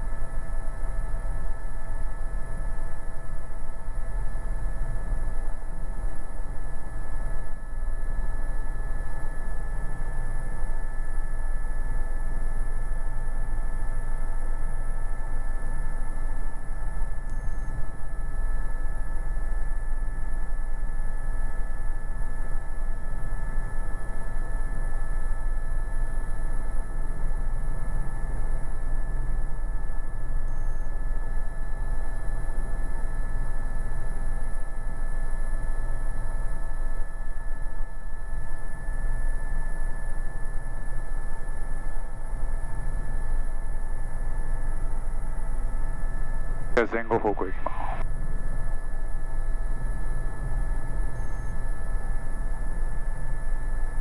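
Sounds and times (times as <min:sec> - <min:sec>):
helicopter rotor rumble: 0:42.1 - 0:52.7.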